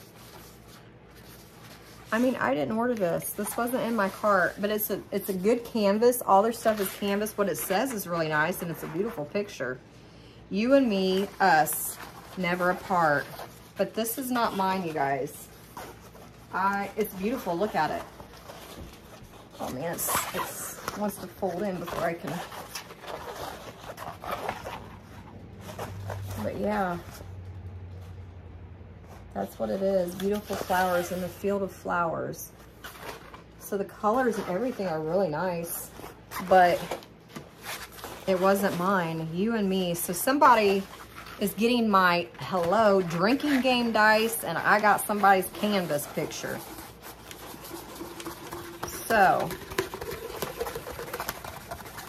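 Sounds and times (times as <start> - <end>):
canvas print rustling: 0.0 - 52.0
faint room hum: 0.0 - 52.0.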